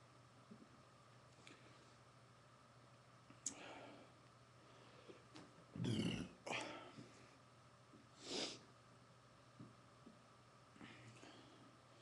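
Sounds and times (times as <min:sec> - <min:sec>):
man belching: 0:05.8 - 0:06.4.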